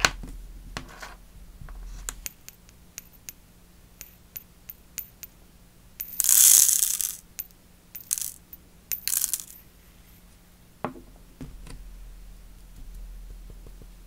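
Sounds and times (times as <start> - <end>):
tiny crystals pattering onto tray: 6.0 - 7.2, 8.0 - 9.6
small crystal clicks: 6.0 - 9.6.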